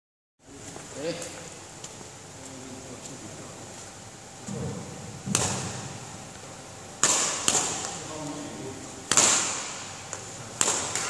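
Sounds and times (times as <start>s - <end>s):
badminton rackets striking shuttlecocks: 5.3s - 5.8s, 7.0s - 8.0s, 9.0s - 11.0s.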